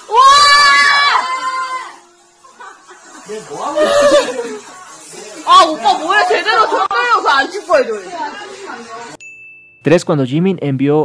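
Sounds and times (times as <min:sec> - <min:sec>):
person squealing high-pitched: 0:00.1 - 0:02.0, 0:03.6 - 0:04.6.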